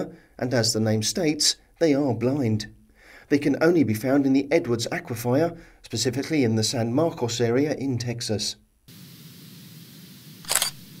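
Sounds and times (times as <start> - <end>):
sharp noise burst: 8.9 - 11.0.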